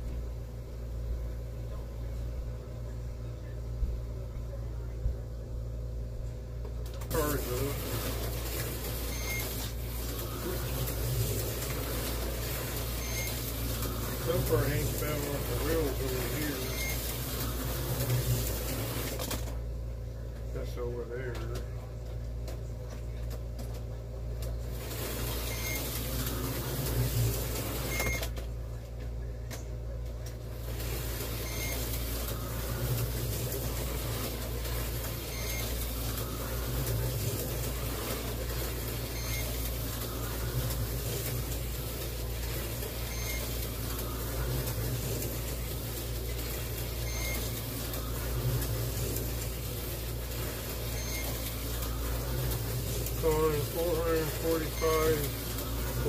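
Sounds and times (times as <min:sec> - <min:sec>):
steady low hum: 0:00.0 - 0:56.0
slot car motors whirring: 0:06.8 - 0:56.0.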